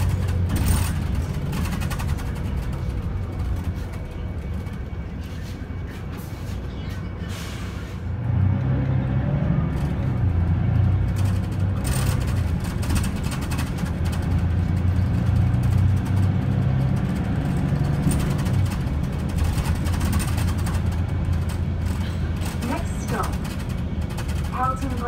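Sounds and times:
bus engine drone: 0:00.0 - 0:25.0
tyre and road noise: 0:00.0 - 0:25.0.

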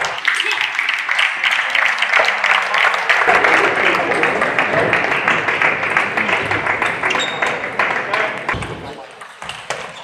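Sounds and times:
crowd noise and voices: 0:00.0 - 0:10.0.

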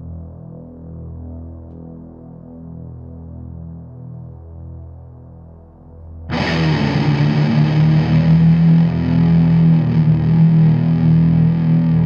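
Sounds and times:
low keyboard chords: 0:06.3 - 0:12.0.

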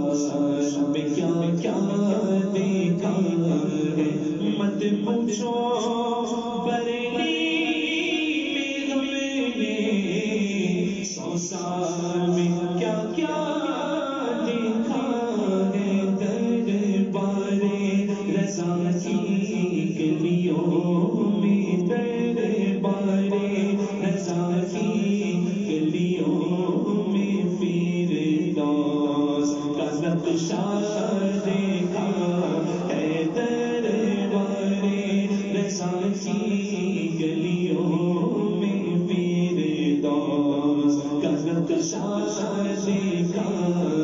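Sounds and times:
man singing devotional verse: 0:00.0 - 0:44.0
person chanting unaccompanied: 0:00.0 - 0:44.0.

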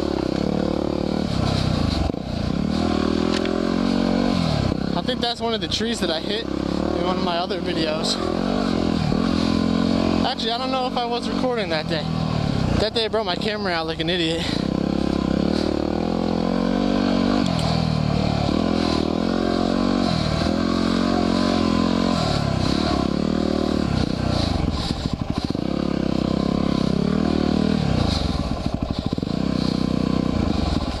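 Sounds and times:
motorcycle engine revving: 0:00.0 - 0:31.0.

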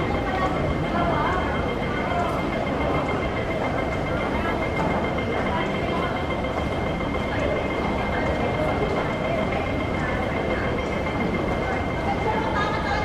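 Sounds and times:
crowd noise: 0:00.0 - 0:13.0
faint voices: 0:00.0 - 0:13.0
rumble of machinery: 0:00.0 - 0:13.0.

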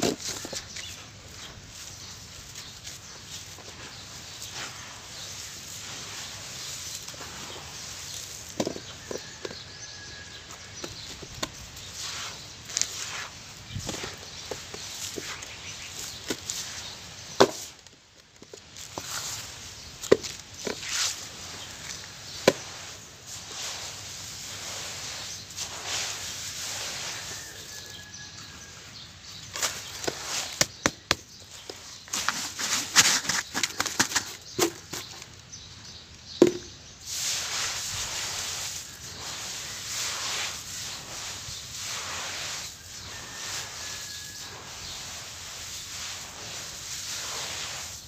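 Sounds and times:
charcoal ash crunching: 0:00.0 - 0:48.0
soft gritty rustle: 0:00.0 - 0:48.0
sharp taps and knocks on container: 0:36.4 - 0:36.7.

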